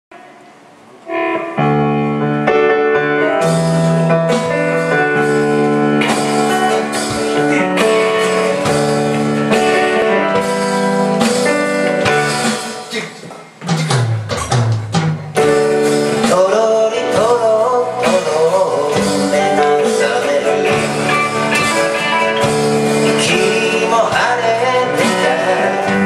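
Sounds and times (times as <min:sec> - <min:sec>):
keyboard notes: 0:00.1 - 0:13.6, 0:14.9 - 0:26.0
live band playing: 0:00.2 - 0:26.0
strummed guitar chords: 0:00.7 - 0:26.0.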